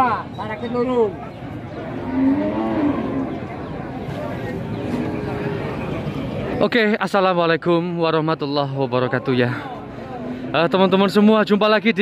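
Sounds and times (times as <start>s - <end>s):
cow mooing: 2.0s - 3.5s.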